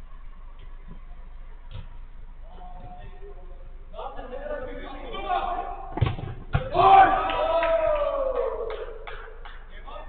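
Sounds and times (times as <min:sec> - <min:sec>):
football kick thuds: 0:05.9 - 0:07.0
players shouting: 0:06.6 - 0:09.0.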